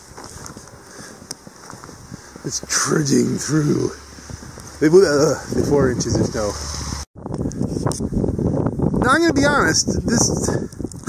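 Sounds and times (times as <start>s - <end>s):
footsteps crunching through snow: 0.0s - 5.7s
wind noise on microphone: 0.0s - 11.0s.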